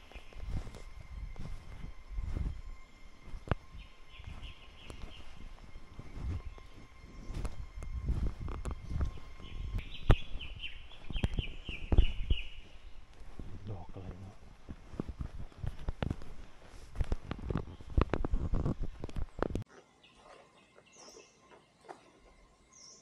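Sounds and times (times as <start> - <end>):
footsteps and handling thumps: 0.0 - 19.7
bird chirping rapidly: 9.3 - 13.0.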